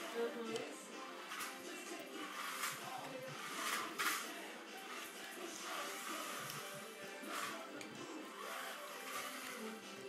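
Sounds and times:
toy car electric motor running: 0:00.0 - 0:10.0.

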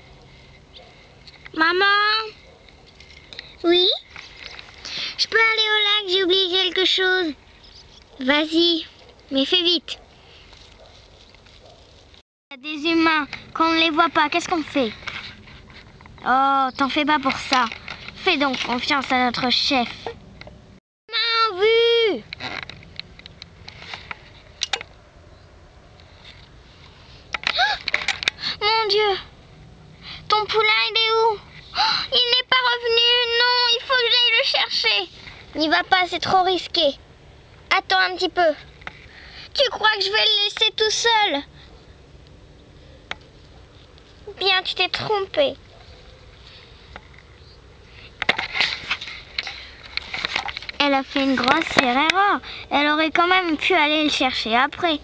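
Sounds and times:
rustling through long grass: 0:10.2 - 0:12.2.

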